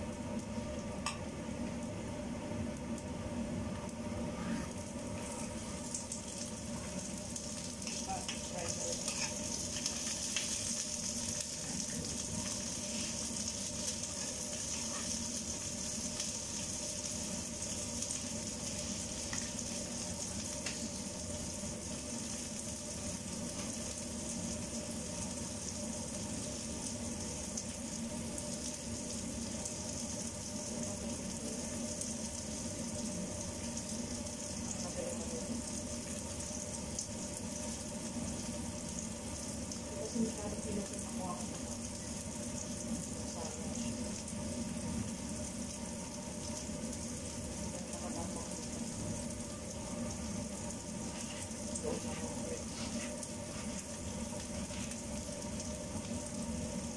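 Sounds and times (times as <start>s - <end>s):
vegetables sizzling in a frying pan: 0.0s - 56.9s.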